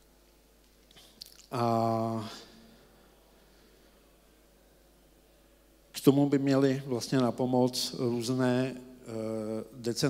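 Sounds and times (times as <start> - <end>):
low steady hum: 0.0 - 10.0
man's voice: 1.5 - 2.6, 6.0 - 10.0.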